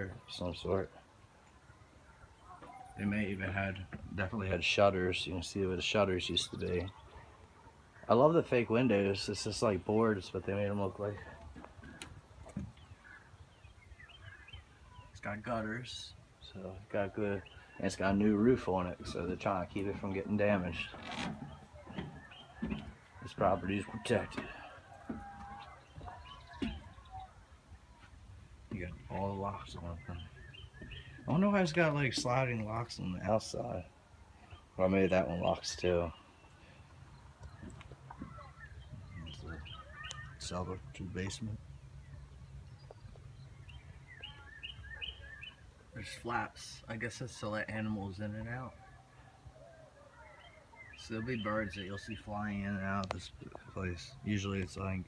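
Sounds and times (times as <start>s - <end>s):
small birds chirping: 0.0s - 55.0s
faint bird chirps and whistles: 37.4s - 41.0s, 42.1s - 46.2s.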